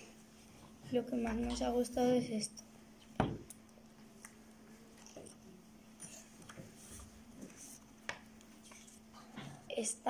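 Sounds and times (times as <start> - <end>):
low steady hum: 0.0 - 10.0
book pages turning: 8.6 - 9.0.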